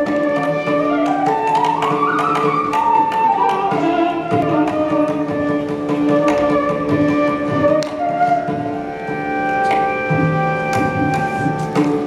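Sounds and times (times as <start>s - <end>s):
bamboo flute melody: 0.0s - 12.0s
mridangam drum strokes: 0.0s - 12.0s
violin: 0.0s - 12.0s.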